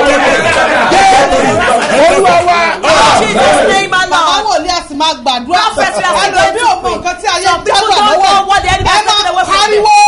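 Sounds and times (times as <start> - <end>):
group of voices shouting: 0.0 - 4.1.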